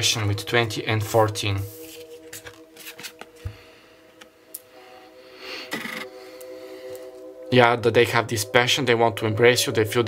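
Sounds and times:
soft background music: 0.0 - 10.0
cards being handled: 1.8 - 3.6.

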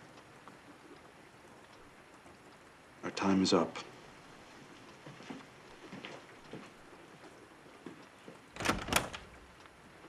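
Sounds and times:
door opening: 8.6 - 9.5.

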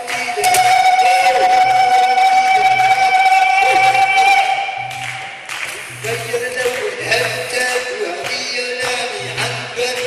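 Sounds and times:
live music: 0.0 - 10.0
man's voice through pa: 5.9 - 10.0.

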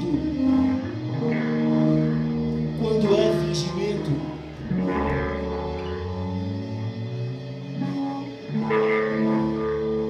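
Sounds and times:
live band playing slowly: 0.0 - 10.0
sustained low notes: 0.0 - 10.0.

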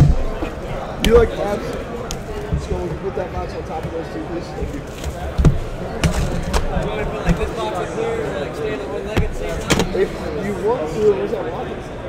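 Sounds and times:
background voices: 0.0 - 10.6
knocks of cardboard box: 4.6 - 7.7.

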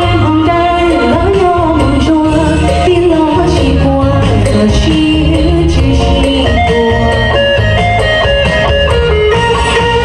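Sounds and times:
woman singing into a microphone: 0.0 - 7.6
music with bass and beat: 0.0 - 10.0.

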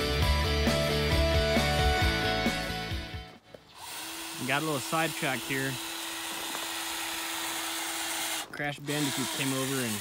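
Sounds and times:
motor hum: 3.5 - 10.0.

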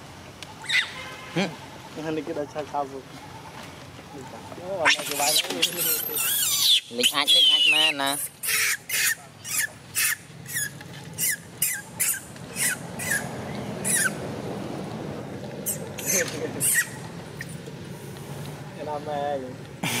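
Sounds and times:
baby monkey shrieking: 0.6 - 1.0, 4.8 - 14.2, 15.6 - 17.6.

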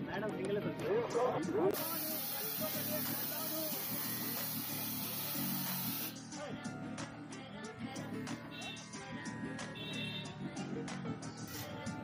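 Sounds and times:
background music: 0.0 - 12.0
loud steady hiss: 1.8 - 6.2.

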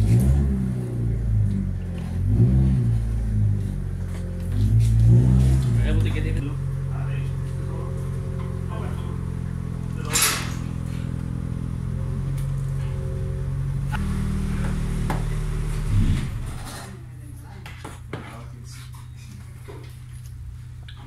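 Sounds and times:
motor vehicle engine running: 0.0 - 17.4, 18.9 - 21.0.

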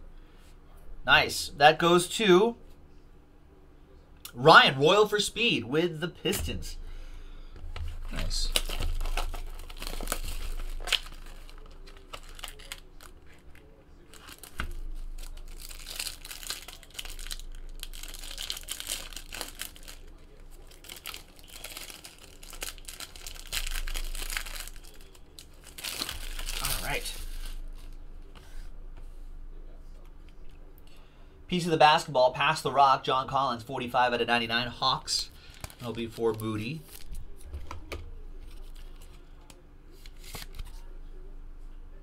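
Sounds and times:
plastic wrapping crinkling and tearing: 7.9 - 28.0, 35.3 - 37.5, 38.4 - 40.8.

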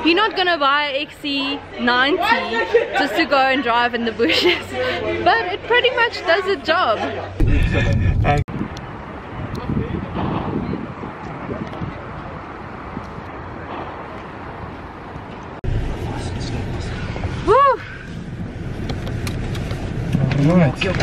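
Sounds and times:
outdoor background noise: 0.0 - 21.0.

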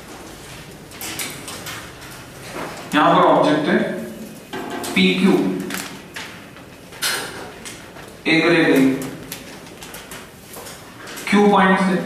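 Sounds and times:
man speaking: 2.9 - 4.2, 4.9 - 5.7, 8.3 - 9.2, 11.3 - 12.0.

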